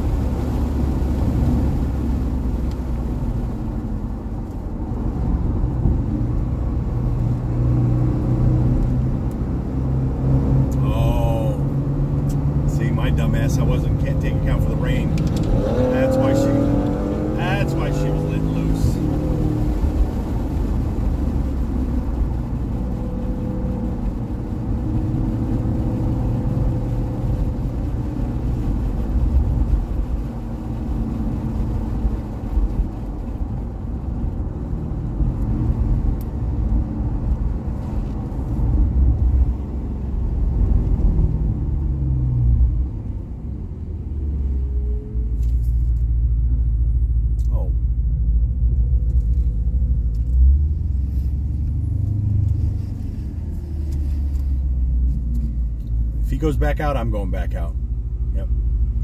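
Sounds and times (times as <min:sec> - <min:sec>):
car engine: 0:00.0 - 0:59.0.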